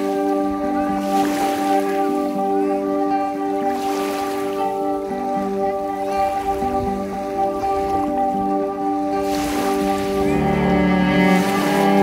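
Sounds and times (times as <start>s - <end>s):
waves lapping on pebbles: 0.0s - 2.7s, 3.5s - 12.0s
slow relaxing music: 0.0s - 12.0s.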